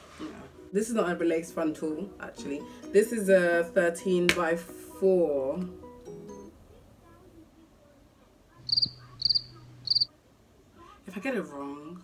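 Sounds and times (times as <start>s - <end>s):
trilled cricket chirps: 8.6s - 10.1s.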